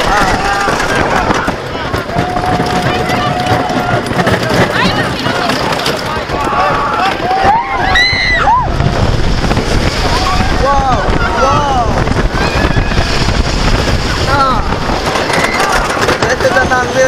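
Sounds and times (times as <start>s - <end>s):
riders yelling and screaming: 0.0s - 17.0s
roller coaster train rumbling: 0.0s - 17.0s
wind rushing over microphone: 0.0s - 17.0s.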